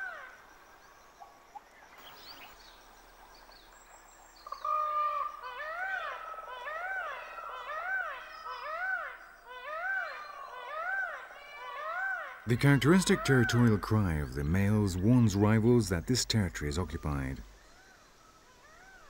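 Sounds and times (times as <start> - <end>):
peacock calling: 4.4 - 19.0.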